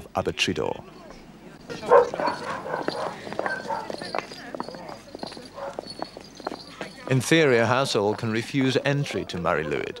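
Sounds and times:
people talking quietly: 0.0 - 10.0
footsteps clicking and clacking: 1.7 - 9.5.

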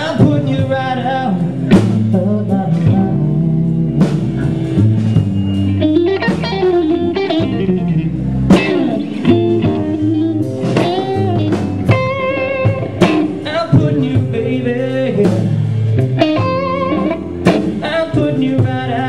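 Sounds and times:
drum kit: 0.0 - 19.0
electric bass: 0.0 - 19.0
electric guitar lead with bent notes: 0.0 - 19.0.

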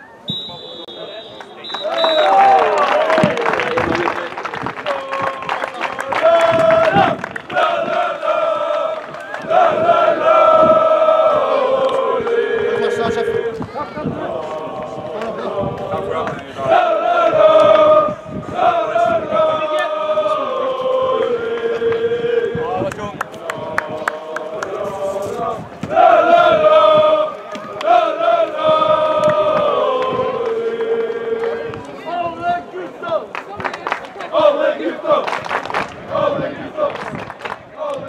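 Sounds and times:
people talking: 0.0 - 7.2, 10.6 - 25.6, 26.4 - 35.2
men singing a chant: 4.9 - 33.2, 34.3 - 35.3, 36.0 - 38.0.

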